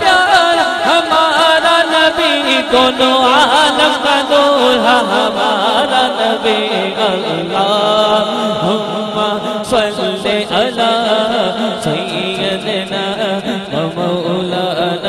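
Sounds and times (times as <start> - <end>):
man singing devotional melody: 0.0 - 15.0.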